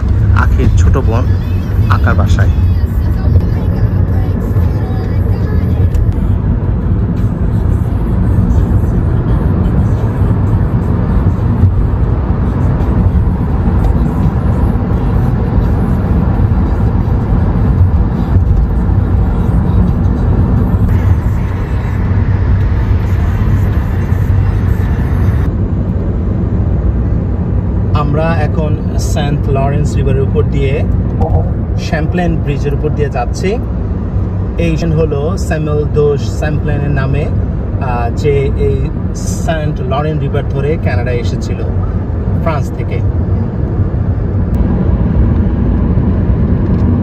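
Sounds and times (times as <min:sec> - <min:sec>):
car cabin road noise: 0:00.0 - 0:47.0
tyre and engine rumble: 0:00.0 - 0:47.0.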